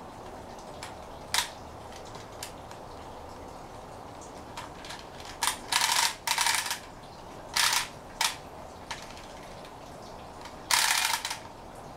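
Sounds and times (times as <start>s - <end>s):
wind-up toy whirring: 4.8s - 9.7s, 10.4s - 11.5s.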